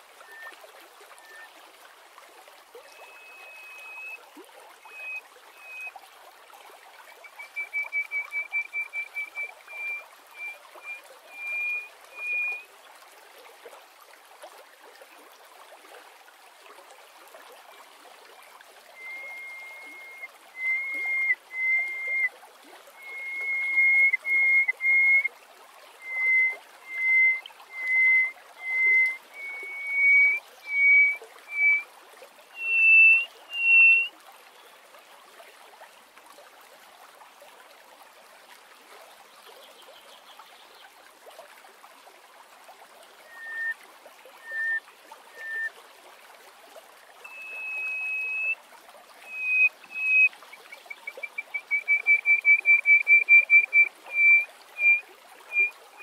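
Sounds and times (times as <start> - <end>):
bird piping whistles: 1.2 - 1.5, 3.0 - 4.2, 4.9 - 5.9, 7.2 - 12.6, 19.0 - 22.3, 23.0 - 25.3, 26.0 - 31.8, 32.6 - 34.1, 43.3 - 43.8, 44.4 - 45.7, 47.3 - 48.6, 49.3 - 56.0.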